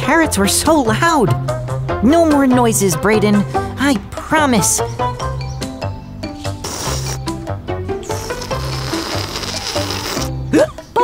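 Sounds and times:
background music with bass: 0.0s - 11.0s
cartoon slurp: 6.4s - 10.5s.

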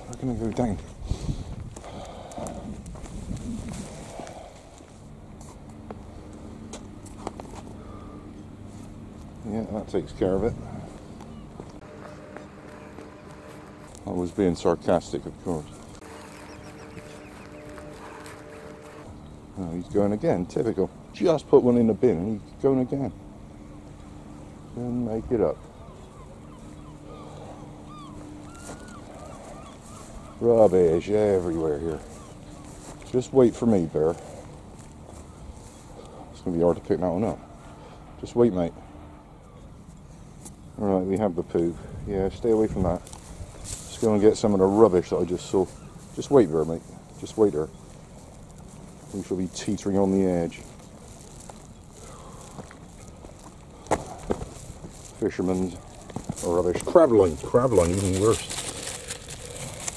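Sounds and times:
footsteps on tarmac: 0.0s - 20.9s, 23.5s - 38.0s, 39.4s - 59.9s
faint steady hum: 0.0s - 59.9s
bird chirping calls: 10.8s - 19.9s, 22.3s - 36.4s, 42.9s - 59.9s
light clicks and scuffs: 45.6s - 59.9s.

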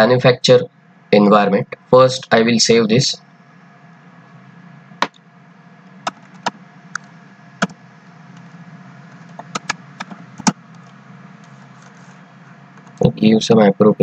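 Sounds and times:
steady low hum: 0.0s - 14.0s.

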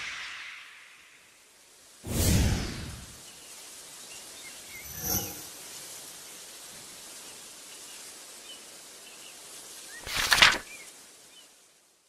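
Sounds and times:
ambient hiss: 0.0s - 12.0s
whoosh: 2.0s - 3.2s, 4.8s - 5.6s.

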